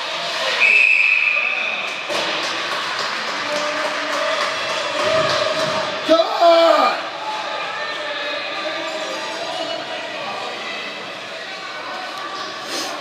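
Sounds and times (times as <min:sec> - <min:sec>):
echoing rink background noise: 0:00.0 - 0:13.0
referee's whistle blast: 0:00.6 - 0:01.8.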